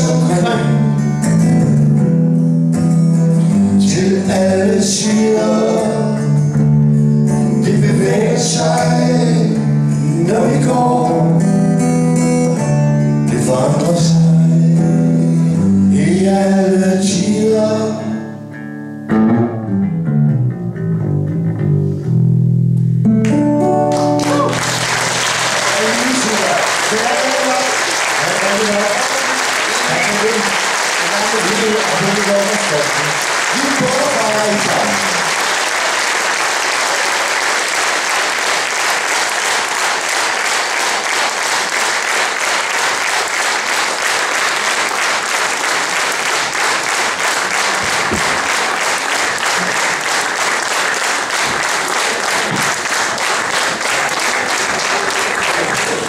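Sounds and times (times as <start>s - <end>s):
audience applauding: 23.9s - 56.0s.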